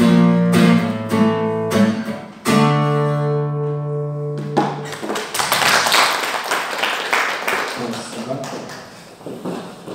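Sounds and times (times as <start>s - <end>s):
audience applause: 4.9s - 9.0s.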